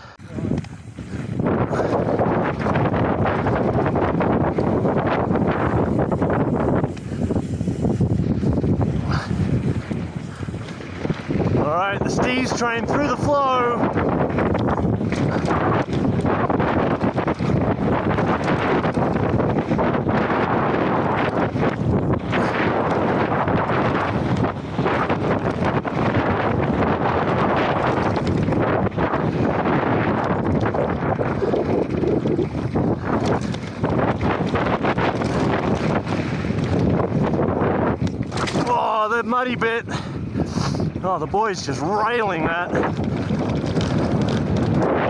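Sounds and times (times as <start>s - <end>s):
bike tyres rumbling on gravel: 0.0s - 45.0s
wind buffeting microphone: 0.0s - 45.0s.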